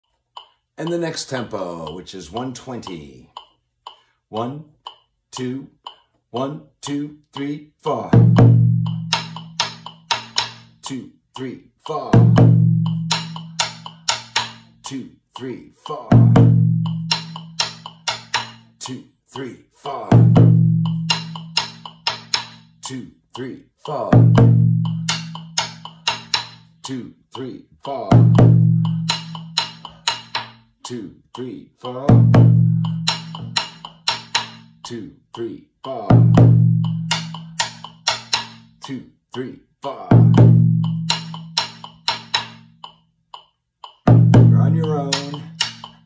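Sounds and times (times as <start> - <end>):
metronome ticking: 0.0 - 46.0
bass drum played with sticks: 0.8 - 3.0, 6.8 - 31.0, 31.8 - 35.1, 35.8 - 39.0, 39.9 - 43.0, 43.8 - 46.0.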